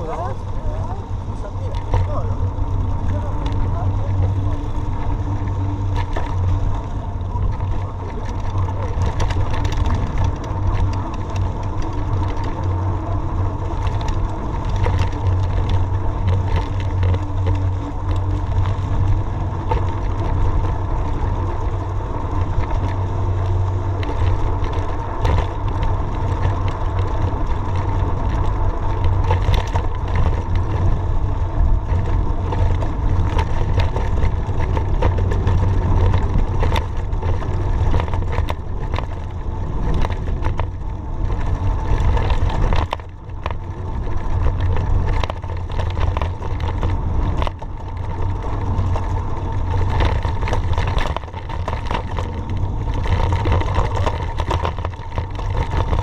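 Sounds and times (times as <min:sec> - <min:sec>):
bike tyres on loose gravel: 0:00.0 - 0:56.0
rattling clicks over bumps: 0:00.0 - 0:56.0
wind rumble on microphone: 0:00.0 - 0:56.0.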